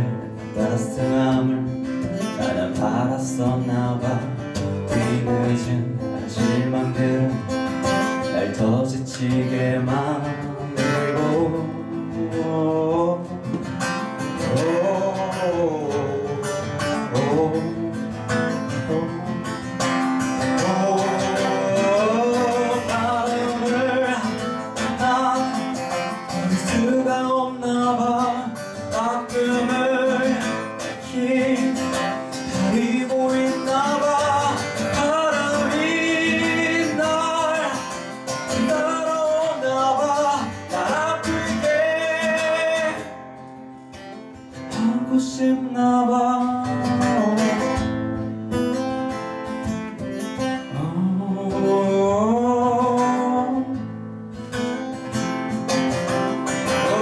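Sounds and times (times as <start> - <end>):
man singing into microphone: 0.0 - 43.2, 44.7 - 48.2, 50.6 - 53.9, 56.6 - 57.0
strummed acoustic guitar: 0.0 - 57.0.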